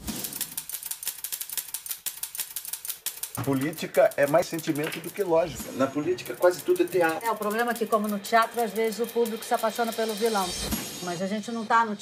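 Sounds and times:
typewriter key clicks: 0.0s - 5.4s.

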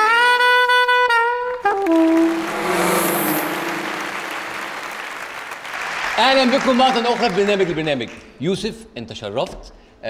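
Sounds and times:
audience applauding: 1.8s - 7.9s
music sting held notes: 1.9s - 5.6s.

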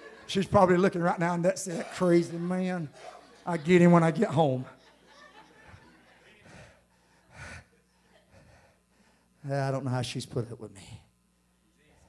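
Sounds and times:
sharp intake of breath: 6.4s - 9.4s.

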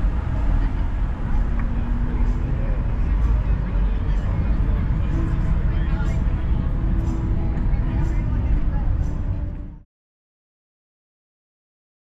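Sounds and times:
car driving on street: 0.0s - 9.8s.

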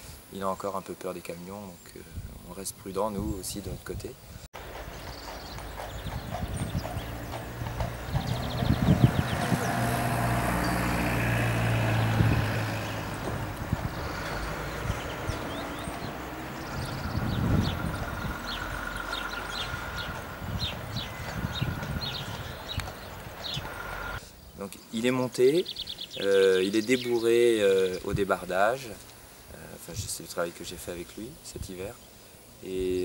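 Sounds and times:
hooves clip-clopping on road: 4.6s - 24.2s
low engine hum: 4.6s - 24.2s.

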